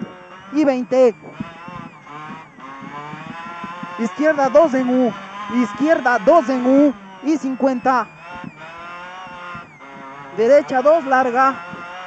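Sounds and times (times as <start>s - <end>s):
car engine from inside cabin: 0.0s - 12.0s.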